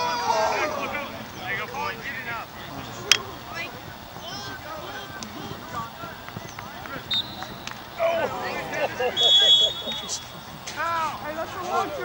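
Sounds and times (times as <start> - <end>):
faint shouts and chatter: 0.0 - 12.0.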